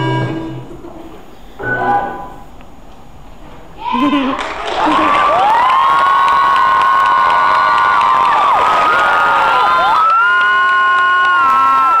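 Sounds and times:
audience cheering: 4.3s - 12.0s.

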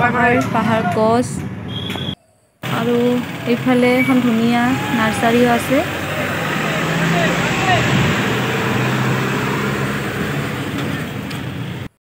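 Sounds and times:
bus engine hum and road noise: 0.0s - 12.0s.

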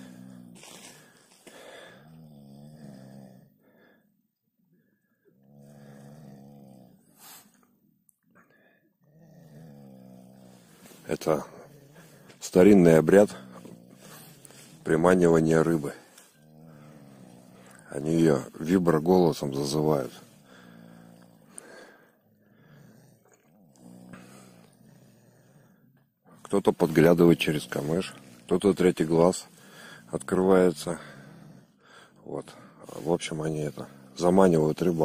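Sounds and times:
man snoring: 0.0s - 4.2s, 5.2s - 35.0s.

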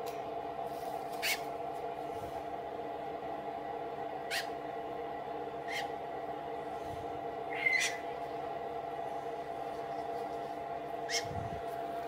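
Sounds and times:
steady low hum: 0.0s - 12.0s
parrot chick squeaking: 1.2s - 1.4s, 4.3s - 4.5s, 5.7s - 5.9s, 7.5s - 8.0s, 11.1s - 11.3s.

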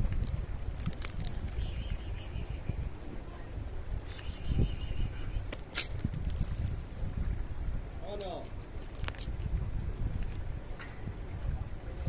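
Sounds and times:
cats crunching dry kibble: 0.0s - 1.6s, 5.6s - 6.8s
wind rumbling on microphone: 0.0s - 12.0s.

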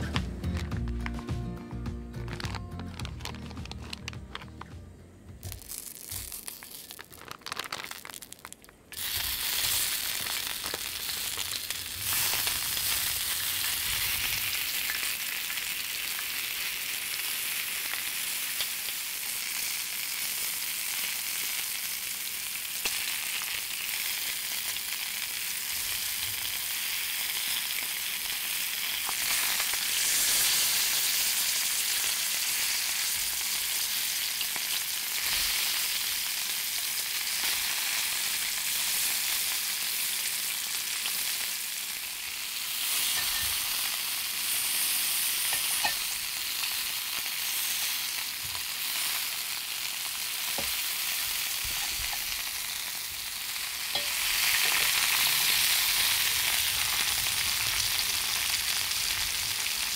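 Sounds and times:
sausages sizzling in a pan: 5.4s - 59.9s.

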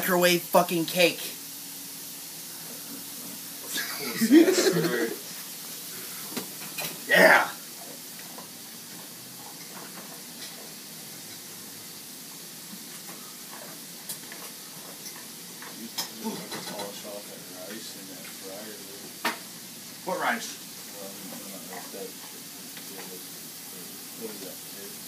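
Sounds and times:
food sizzling in frying pan: 0.0s - 25.0s.

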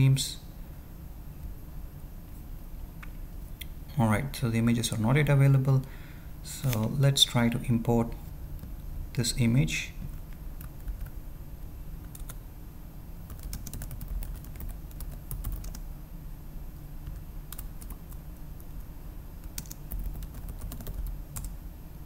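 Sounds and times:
faint low hum: 0.0s - 22.0s
computer keyboard typing: 10.1s - 11.2s, 12.0s - 12.4s, 13.3s - 15.8s, 17.0s - 18.8s, 19.4s - 21.6s.

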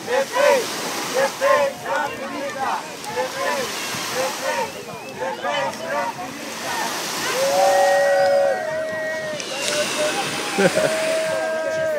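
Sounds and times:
long held calls: 0.0s - 11.5s
crowd noise: 0.0s - 11.9s
people's voices: 0.0s - 11.9s
surf washing: 0.0s - 11.9s.

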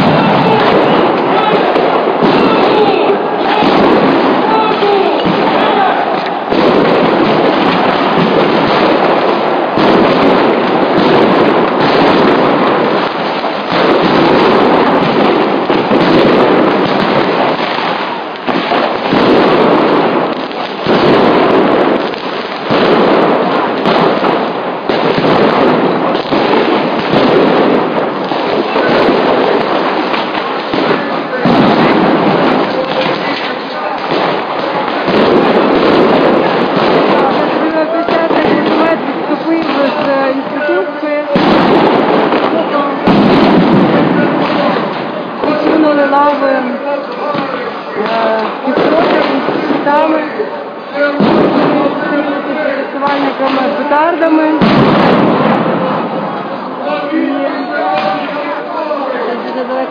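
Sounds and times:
crowd noise and shouting: 0.0s - 59.9s
sharp explosive bangs: 0.0s - 59.9s.

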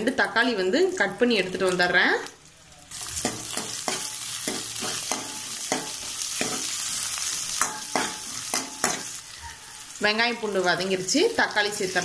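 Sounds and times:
food sizzling in oil: 0.4s - 12.0s.

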